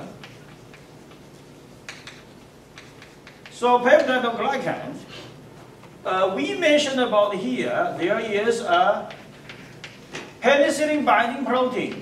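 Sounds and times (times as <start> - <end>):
chalk tapping on blackboard: 0.0 - 4.4, 8.7 - 10.2.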